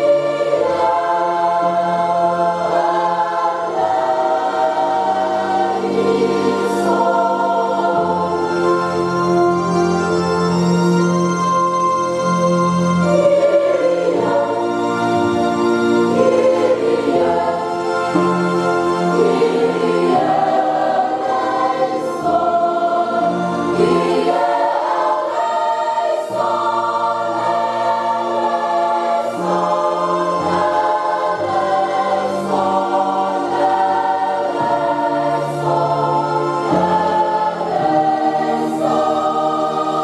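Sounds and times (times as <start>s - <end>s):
choir singing a hymn: 0.0s - 40.0s.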